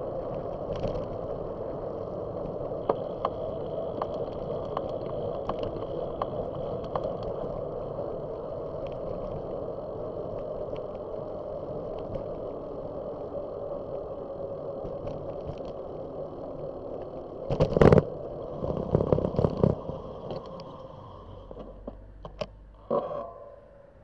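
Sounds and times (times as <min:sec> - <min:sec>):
wind noise: 0:00.0 - 0:23.1
bicycle tyres rolling on pavement: 0:00.0 - 0:24.0.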